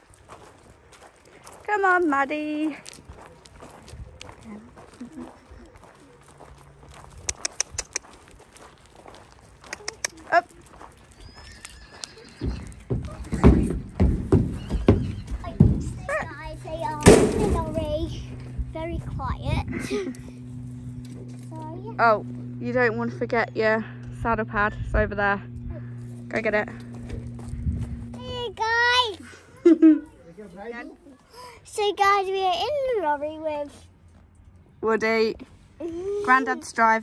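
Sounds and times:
horse whinnying: 11.3 - 12.9, 14.5 - 15.4
hooves thudding on wooden ramp: 12.0 - 18.7.

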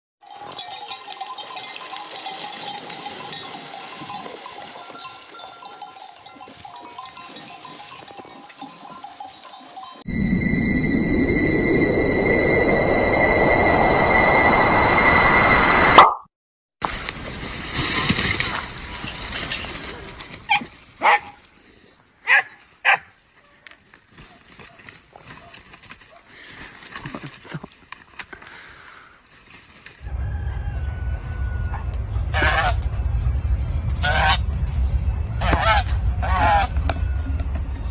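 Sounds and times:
livestock bells clanking: 0.2 - 10.1, 18.8 - 20.0
dog barking: 20.5 - 21.4, 22.2 - 23.1.

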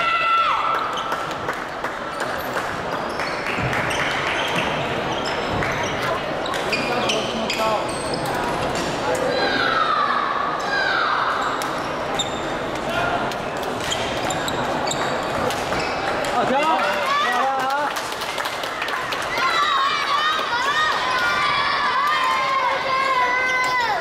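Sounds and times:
shoes squeaking on wooden floor: 13.8 - 16.1.

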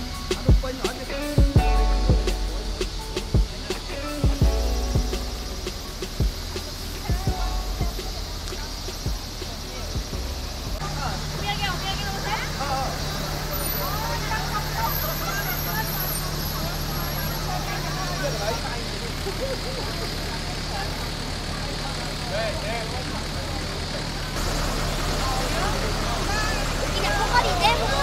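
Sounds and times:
bus engine idling: 0.0 - 28.0
crowd chatter: 0.0 - 28.0.

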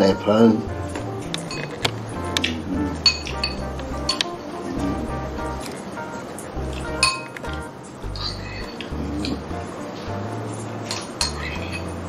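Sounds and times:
soft background music: 0.0 - 12.0
wood fire crackling and popping: 0.7 - 12.0.

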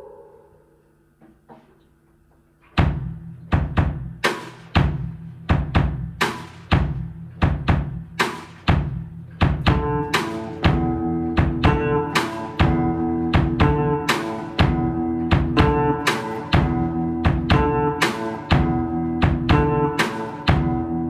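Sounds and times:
drum kit beat: 2.7 - 21.0.

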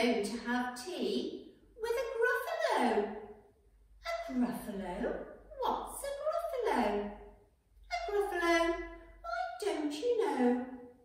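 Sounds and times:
woman speaking in character voice: 0.0 - 3.2, 4.0 - 7.1, 7.9 - 10.7.

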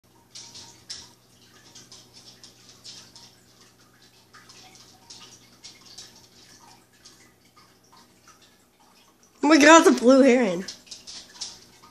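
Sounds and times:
rain dripping: 0.0 - 11.9
low steady room hum: 0.1 - 11.9.

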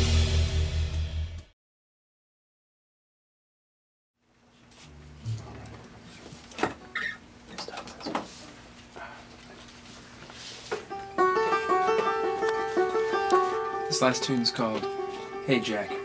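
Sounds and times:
plucked string instrument notes: 10.9 - 16.0.

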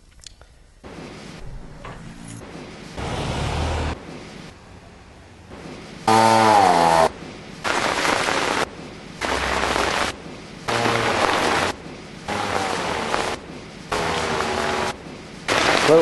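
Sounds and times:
rain on microphone: 7.6 - 11.8, 15.5 - 16.0.

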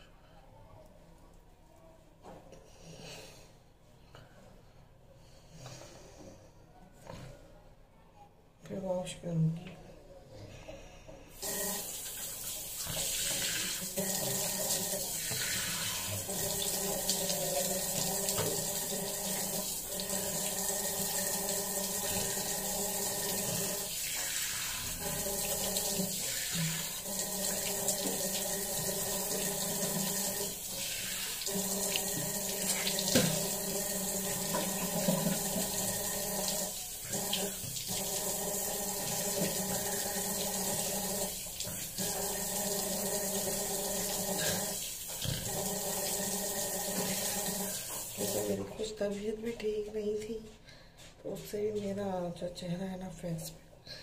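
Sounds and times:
tap running into sink: 17.8 - 18.8, 31.9 - 33.6, 34.3 - 35.9.

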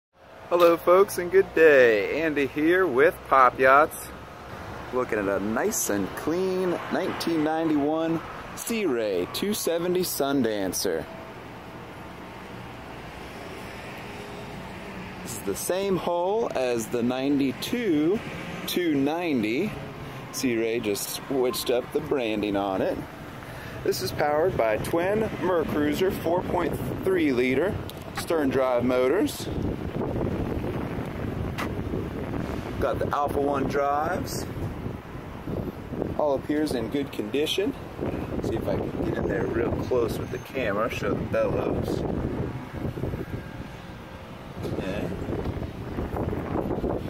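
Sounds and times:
low outdoor rush: 0.2 - 47.0
wind buffeting microphone: 21.5 - 47.0.

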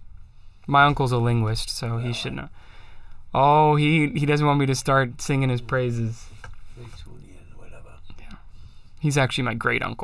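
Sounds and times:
person whispering: 1.8 - 2.5.

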